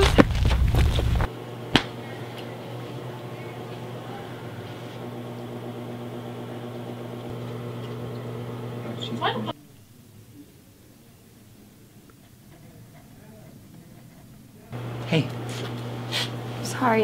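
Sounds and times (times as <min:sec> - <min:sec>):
wind rumbling on microphone: 0:00.0 - 0:01.3
low electrical hum: 0:00.0 - 0:17.0.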